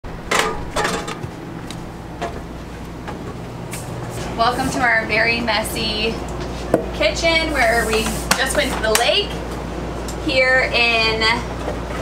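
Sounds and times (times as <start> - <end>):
low steady hum: 0.1 - 12.0
footsteps on metal steps: 0.2 - 4.6.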